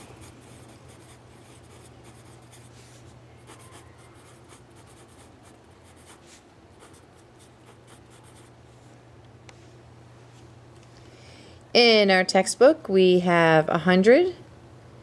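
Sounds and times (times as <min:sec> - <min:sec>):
pen scratching on paper: 0:00.0 - 0:02.7, 0:03.4 - 0:08.5.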